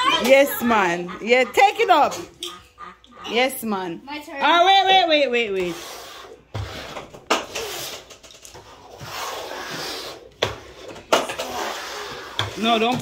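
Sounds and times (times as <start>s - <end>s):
bowls scraping on wooden table: 5.4s - 13.0s.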